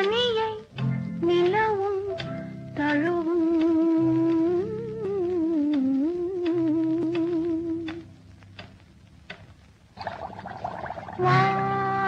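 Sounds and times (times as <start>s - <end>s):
woman singing a cappella: 0.0s - 2.2s, 2.8s - 8.0s.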